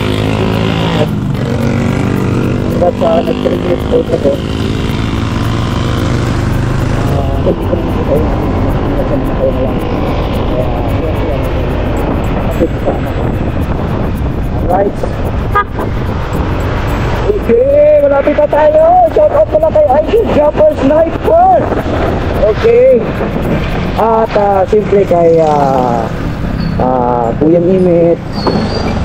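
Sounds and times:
voice with wavering pitch: 0:00.0 - 0:28.3
motorcycle engine: 0:00.0 - 0:29.0
wind rush: 0:00.0 - 0:29.0.

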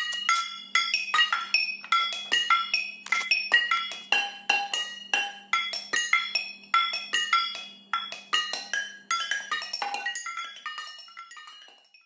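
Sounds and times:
kitchen pots and cups struck as percussion: 0:00.0 - 0:12.0.

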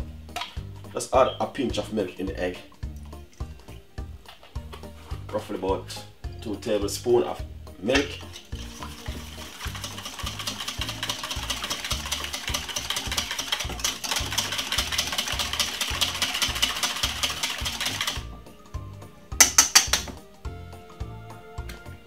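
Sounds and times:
whisk clattering in metal bowl: 0:08.0 - 0:18.2
sharp taps: 0:19.4 - 0:20.2.

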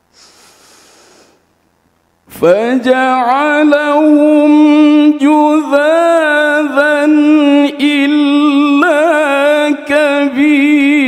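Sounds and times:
person breathing in: 0:00.1 - 0:01.5.

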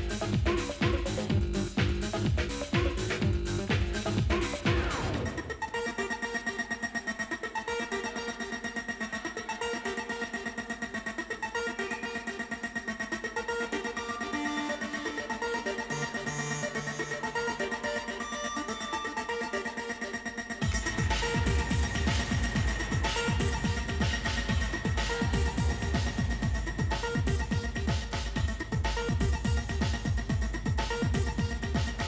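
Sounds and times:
kick drum and bass beat: 0:00.0 - 0:06.2, 0:20.6 - 0:32.0
fast-pulsing synth riff: 0:00.0 - 0:32.0.

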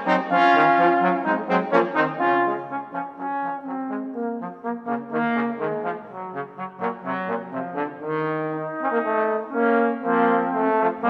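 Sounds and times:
trombone quartet playing: 0:00.0 - 0:11.0.

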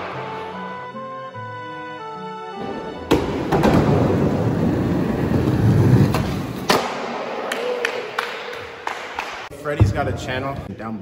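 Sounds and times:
skateboard wheels rolling: 0:03.1 - 0:06.8.

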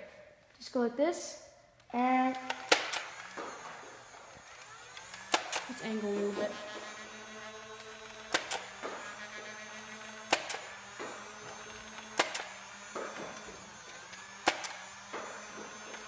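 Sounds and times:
blaster motors whirring: 0:02.2 - 0:16.0
dart shots double click: 0:02.4 - 0:03.5.

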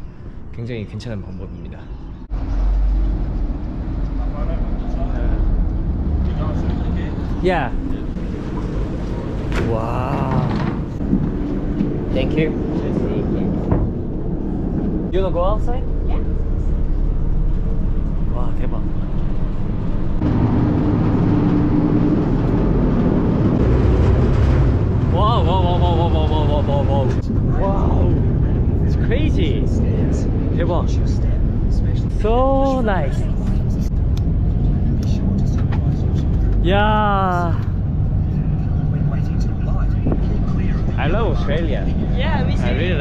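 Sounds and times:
ferry engines rumbling: 0:00.0 - 0:43.0
broad rushing noise: 0:02.2 - 0:36.7.

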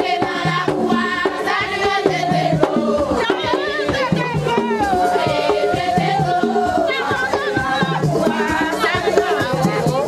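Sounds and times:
group of voices singing: 0:00.0 - 0:10.0
steady percussion strokes: 0:00.0 - 0:10.0.

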